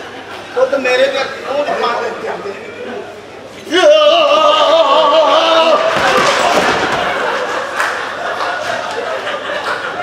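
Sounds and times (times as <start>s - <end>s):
man's wavering cry: 3.6s - 5.9s.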